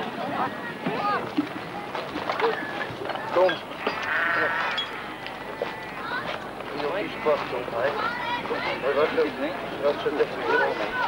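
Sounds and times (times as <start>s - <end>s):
people's voices: 0.0s - 11.0s
sheep bleating: 3.8s - 6.2s.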